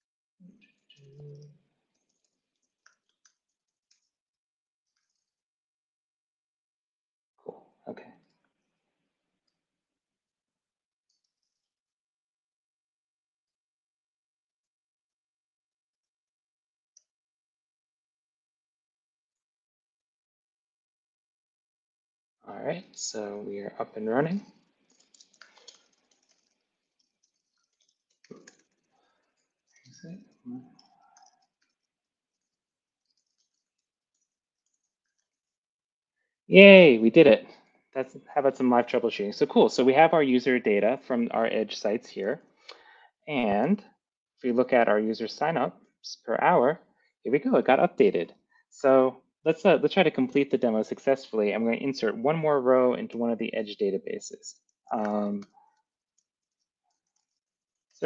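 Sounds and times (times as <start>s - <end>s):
low voice sound: 22.5s - 24.4s, 30.0s - 30.6s, 36.5s - 42.4s, 43.3s - 43.8s, 44.5s - 48.2s, 48.8s - 55.4s
computer keyboard clicks: 24.9s - 29.4s, 30.8s - 35.3s.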